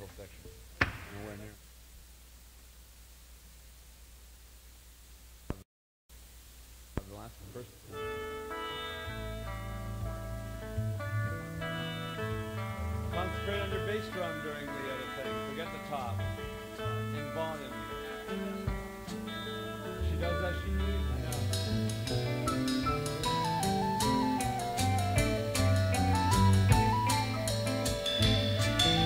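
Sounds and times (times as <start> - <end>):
bass line: 7.9 - 14.5, 15.2 - 29.0
guitar picking a melody: 7.9 - 29.0
drums and cymbals: 21.2 - 29.0.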